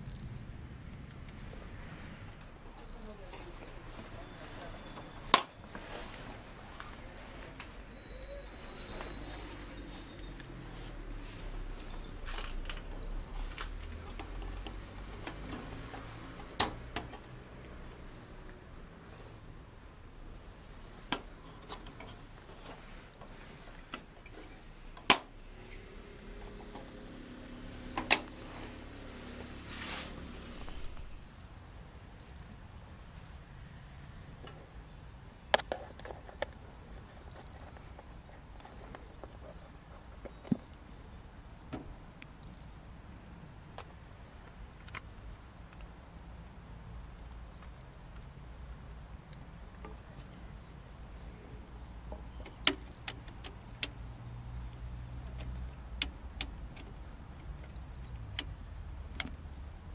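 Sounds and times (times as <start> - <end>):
handling rustle: 3.3 - 16.4, 20.6 - 25.4, 29.4 - 31.2.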